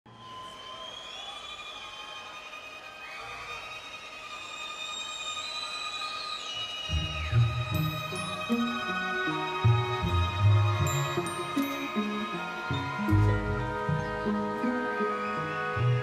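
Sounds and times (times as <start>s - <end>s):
orchestra playing high notes: 2.0s - 16.0s
orchestra low notes: 6.8s - 16.0s.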